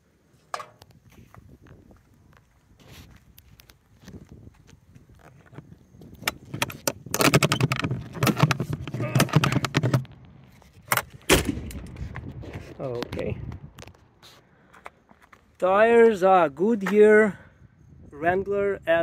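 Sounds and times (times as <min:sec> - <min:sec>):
metal door rattling and scraping: 0:06.4 - 0:10.1.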